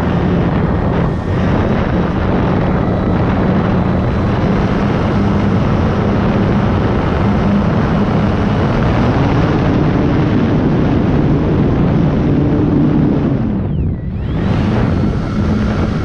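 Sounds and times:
electric motor and propeller hum: 0.0 - 16.0
wind rush on microphone: 0.0 - 16.0.

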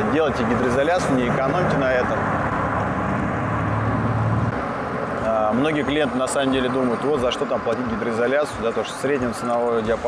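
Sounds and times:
city street traffic: 0.0 - 10.0
low vehicle hum: 0.0 - 10.0.

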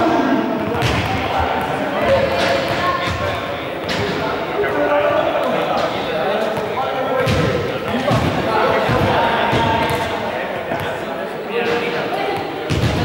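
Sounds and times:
balls bouncing with echoing thuds: 0.0 - 13.0
indistinct voices: 0.0 - 13.0.

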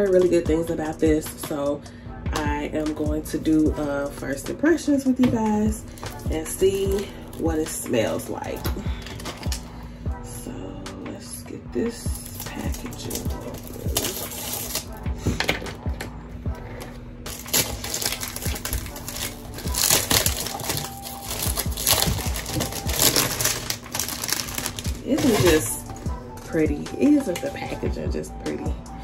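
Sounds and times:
cellophane crinkling and crackling: 5.9 - 9.7, 12.2 - 15.8, 16.8 - 26.1
scissors snipping cellophane: 6.0 - 9.6, 12.2 - 15.8, 17.3 - 26.0.

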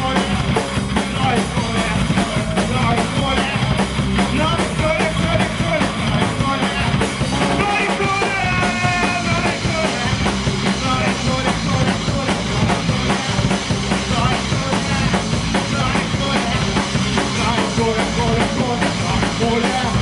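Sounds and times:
punk rock band playing: 0.0 - 20.0.

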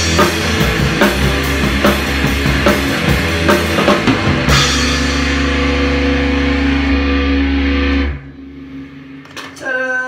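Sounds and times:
distorted electric guitar and bass chord: 0.0 - 9.7.

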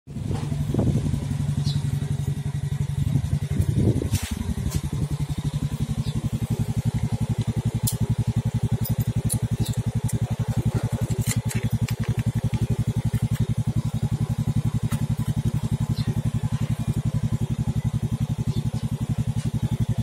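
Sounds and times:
motorcycle engine revving and idling: 0.1 - 20.0.

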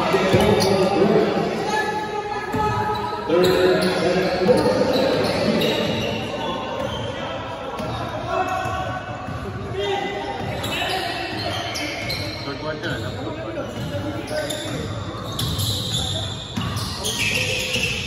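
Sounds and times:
voices echoing in a hall: 0.0 - 18.0.

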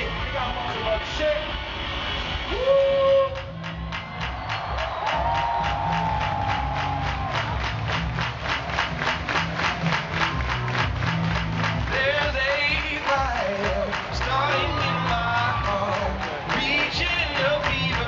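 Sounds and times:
repeating bass line: 5.7 - 18.0.

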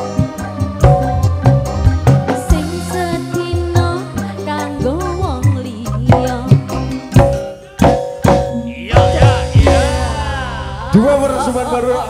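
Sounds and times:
band playing instrumental: 0.0 - 12.0
sharp hand-drum strokes: 7.2 - 10.7.

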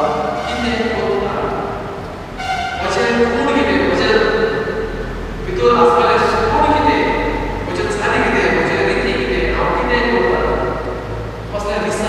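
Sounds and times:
man preaching into microphone: 0.0 - 1.8, 2.8 - 4.4, 5.4 - 10.7, 11.5 - 12.0.

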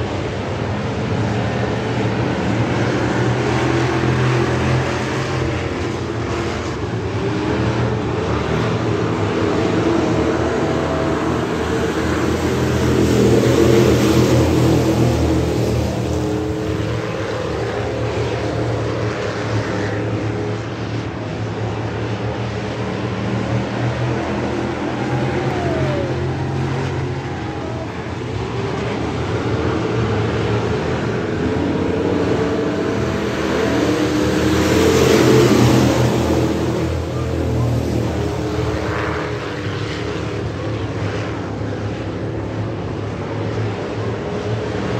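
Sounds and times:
racing car engines droning: 0.0 - 44.9.

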